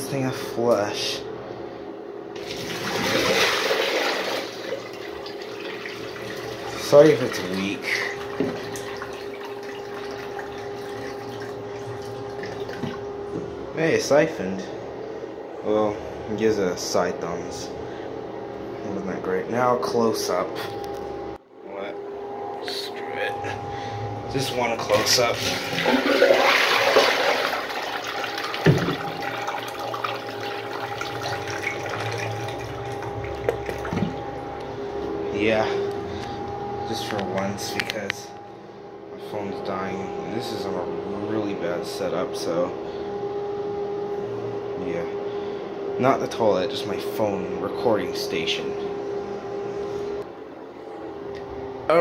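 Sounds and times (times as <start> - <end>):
toilet flushing: 2.4 - 13.2, 24.4 - 34.5.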